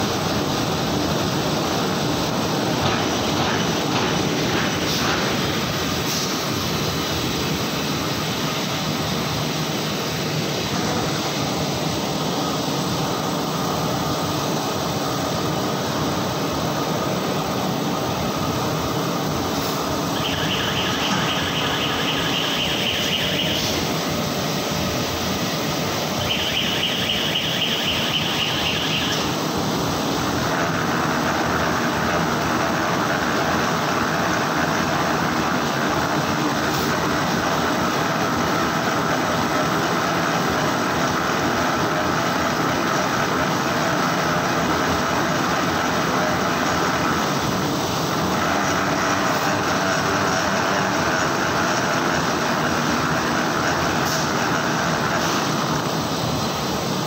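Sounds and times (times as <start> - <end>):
high hiss: 0.0 - 57.0
printing press running: 0.0 - 57.0.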